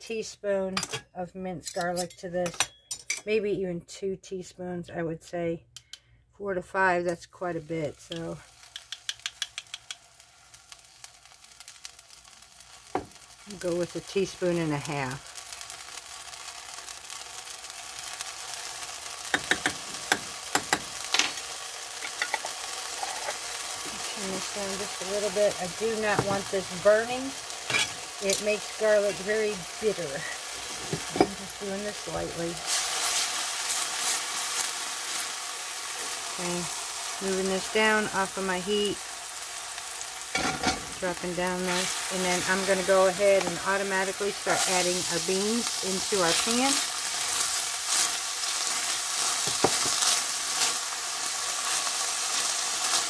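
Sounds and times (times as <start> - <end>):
garlic sizzling in oil: 6.9 - 53.0
small crackles: 8.1 - 37.7
spatula stirring in pan: 44.4 - 50.9.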